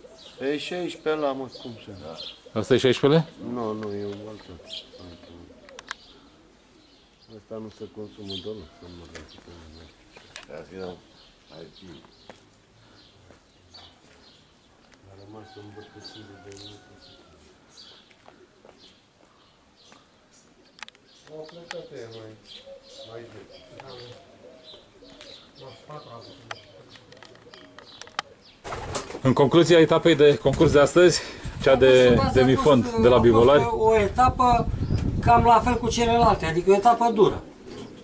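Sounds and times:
pigeons cooing: 0.0 - 12.1, 21.5 - 29.2, 36.9 - 38.0
small birds chirping: 0.0 - 38.0.

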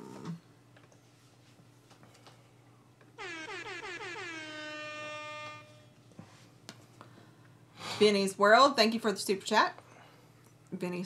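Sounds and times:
horn-like falling pitch sweeps: 3.2 - 6.0.

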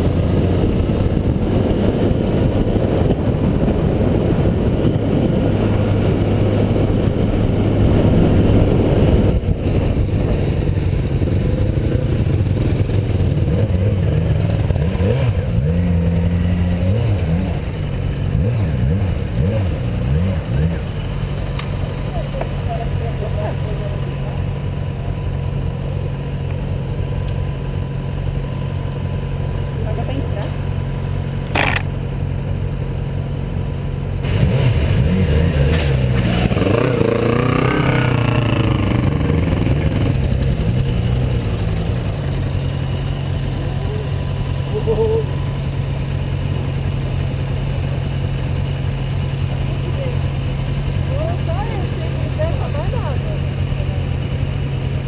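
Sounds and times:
motorcycle engine idling and revving: 0.0 - 55.0
sharp click: 31.5 - 31.9.

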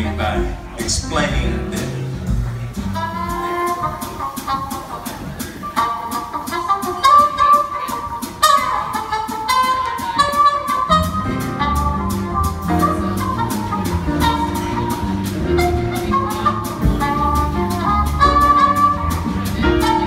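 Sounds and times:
bass: 0.0 - 5.7, 8.4 - 20.0
piano: 0.0 - 20.0
trumpet melody: 0.0 - 20.0.

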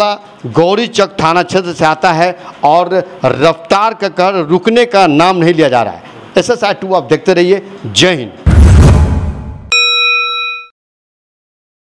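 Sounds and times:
low rushing transition noise: 8.5 - 9.7
notification bell ding: 9.7 - 10.7.

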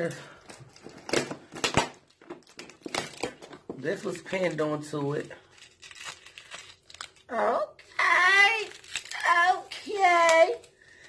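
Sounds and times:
gift wrapping paper crinkling: 0.0 - 11.0.

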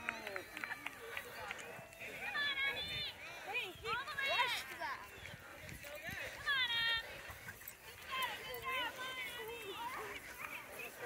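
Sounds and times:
distant voices calling and shouting: 0.0 - 11.0.

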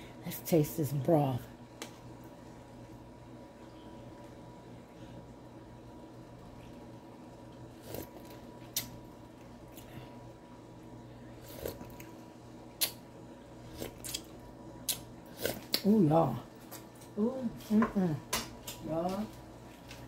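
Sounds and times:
steady low hum: 0.0 - 20.0
mouth clicks and smacks tasting: 8.7 - 9.0, 12.8 - 13.0.

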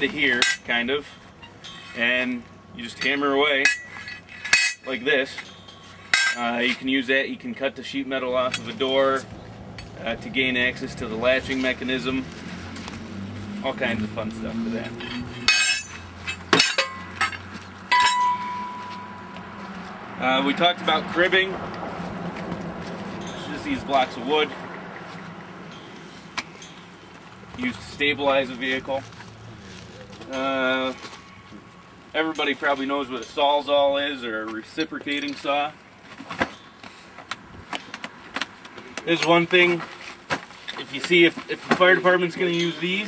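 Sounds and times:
steel tools clanking: 0.3 - 6.9, 14.8 - 19.4, 23.2 - 23.8, 25.7 - 26.9, 42.4 - 43.0.

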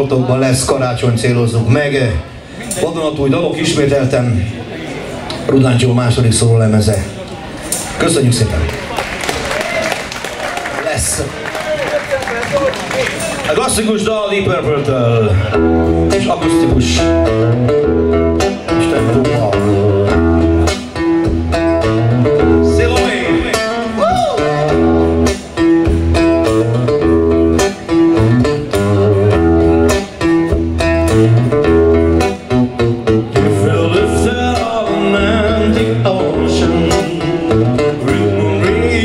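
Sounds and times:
live band playing acoustic rock: 0.0 - 39.0
man singing: 16.1 - 17.3, 18.8 - 20.4, 22.4 - 25.1, 33.3 - 39.0.

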